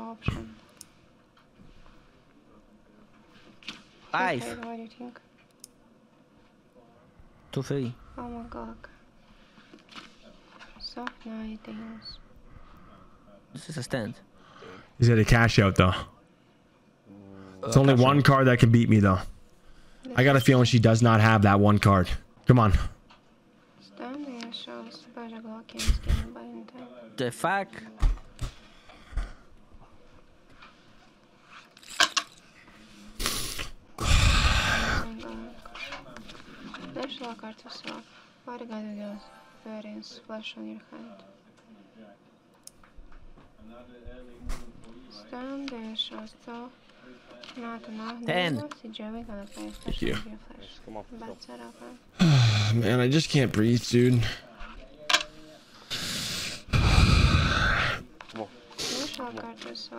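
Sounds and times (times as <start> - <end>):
man sighing heavily: 34.0 - 35.1, 52.2 - 52.8
man breathing in: 55.8 - 58.0.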